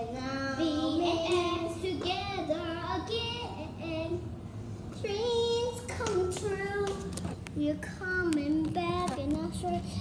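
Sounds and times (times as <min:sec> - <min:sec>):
girl singing slow melody: 0:00.0 - 0:10.0
steady low hum: 0:00.0 - 0:10.0.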